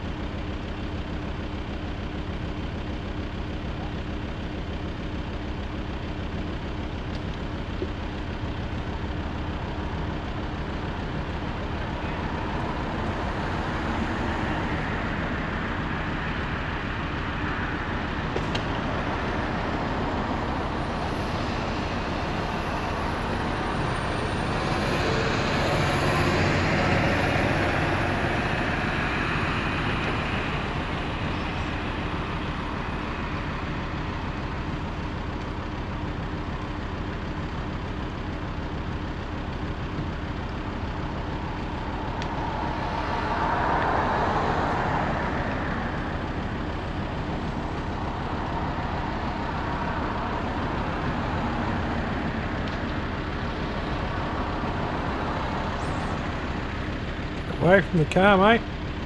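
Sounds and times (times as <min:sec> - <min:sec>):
road traffic passing: 0:00.0 - 0:59.0.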